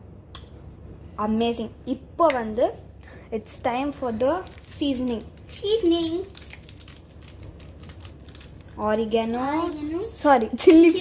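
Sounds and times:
seasoning shaken from paper sachet: 4.4s - 10.0s.

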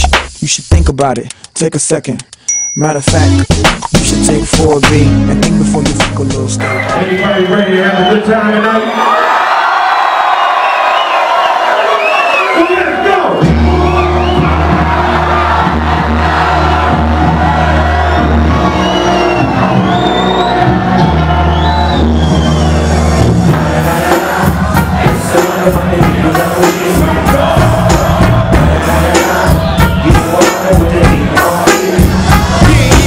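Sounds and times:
loud club music: 0.0s - 1.2s, 2.9s - 8.8s, 11.8s - 33.0s
heavy bass line: 3.1s - 7.0s, 13.4s - 33.0s
crowd whooping and cheering: 6.6s - 33.0s.

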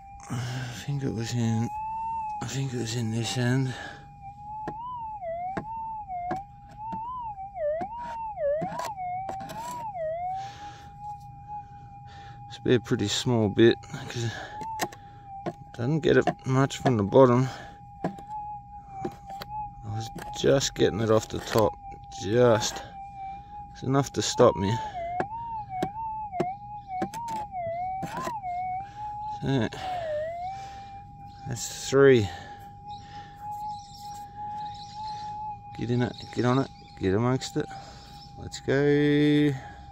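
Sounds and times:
metal detector wavering tone: 1.0s - 11.6s.

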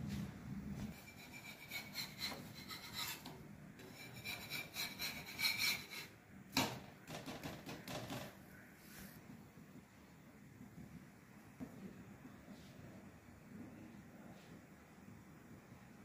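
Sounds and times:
metal spatula scraping griddle: 0.9s - 6.2s.

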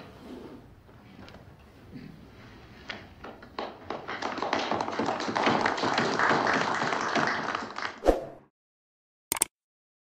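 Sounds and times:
men applauding: 3.6s - 8.0s.

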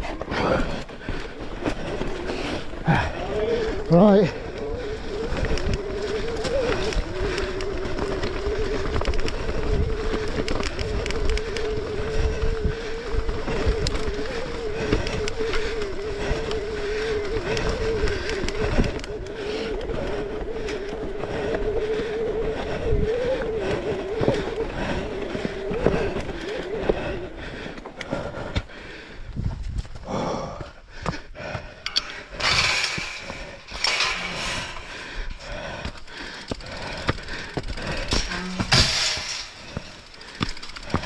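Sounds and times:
bike tyres humming: 0.0s - 41.0s.

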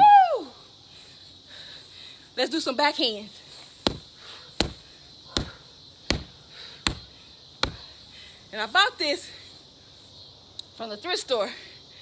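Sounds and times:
punches thudding on punching bag: 3.8s - 7.9s.

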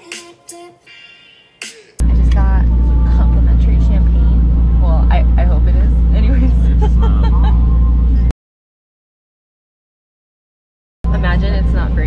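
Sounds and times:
woman talking: 2.0s - 7.5s, 11.1s - 12.0s
low hum: 2.0s - 8.3s, 11.1s - 12.0s
train engine rumble: 2.0s - 8.3s, 11.1s - 12.0s.

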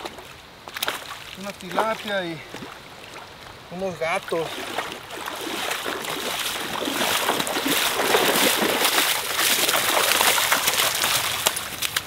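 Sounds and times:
wading through shallow water: 0.0s - 12.0s.

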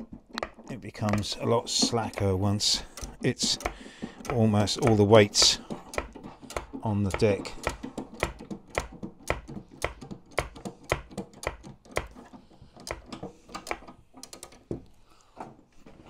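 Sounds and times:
jack clicking: 0.0s - 14.8s.

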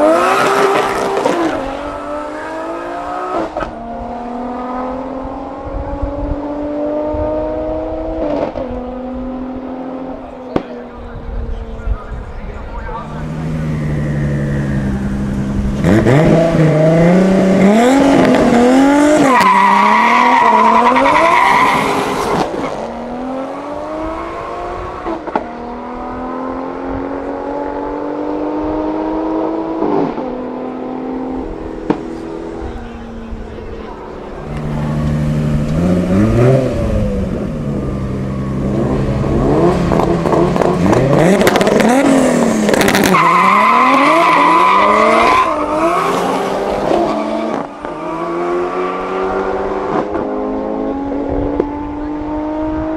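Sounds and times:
cars accelerating hard: 0.0s - 52.9s.

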